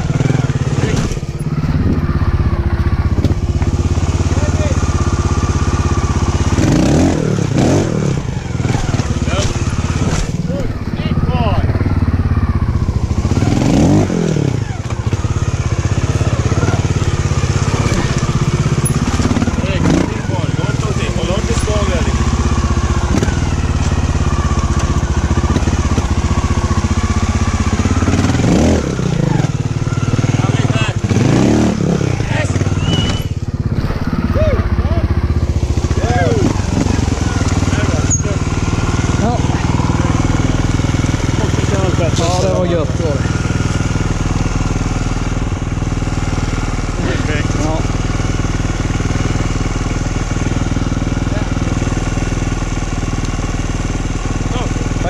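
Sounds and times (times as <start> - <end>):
voices talking: 0.0 - 52.4, 54.1 - 55.0
motorcycle engine idling: 0.0 - 55.0.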